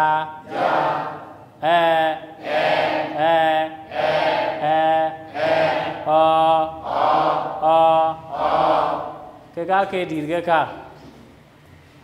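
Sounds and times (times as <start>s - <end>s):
man chanting a vowel: 0.0s - 0.5s, 1.6s - 8.7s.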